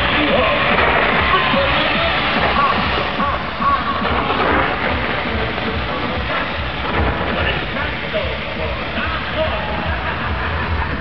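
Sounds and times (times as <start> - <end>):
crowd noise: 0.0 - 11.0
loud live pop music: 0.0 - 11.0.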